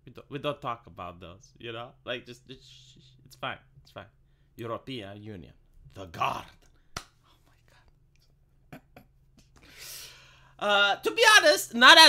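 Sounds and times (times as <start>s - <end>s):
man's suppressed laughter: 8.6s - 9.6s.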